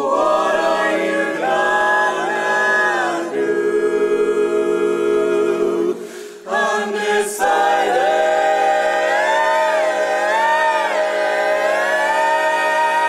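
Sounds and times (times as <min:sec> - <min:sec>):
a cappella ensemble singing: 0:00.0 - 0:13.0.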